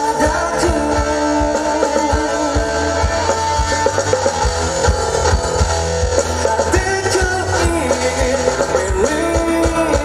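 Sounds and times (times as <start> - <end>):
man singing: 0.0 - 4.0, 6.2 - 10.0
drum kit beat: 0.0 - 10.0
electric guitar: 0.0 - 10.0
keyboards: 0.0 - 10.0.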